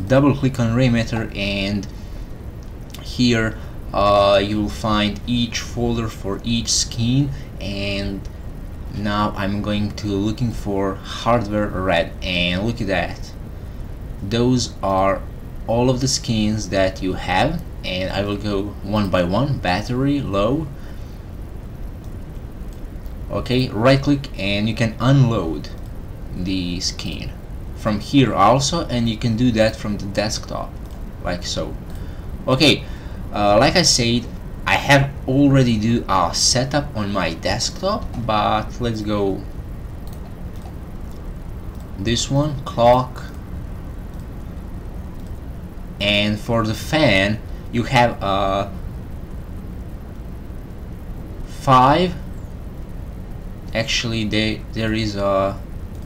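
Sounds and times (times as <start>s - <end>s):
background hiss: 0.0s - 56.0s
low hum: 0.0s - 56.0s.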